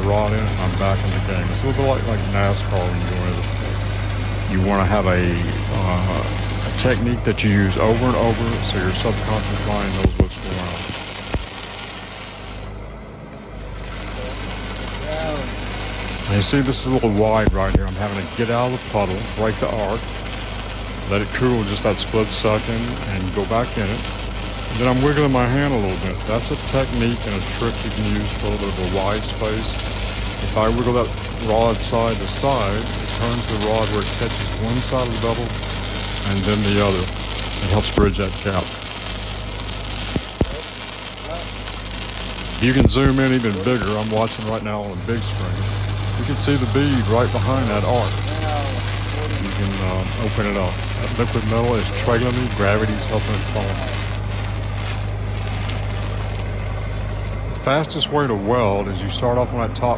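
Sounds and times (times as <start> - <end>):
sharp welding pops: 0.0 - 57.8
welding arc crackling: 0.0 - 59.9.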